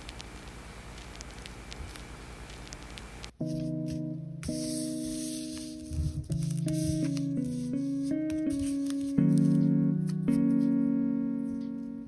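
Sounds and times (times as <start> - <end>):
held keyboard chords: 3.3 - 12.0.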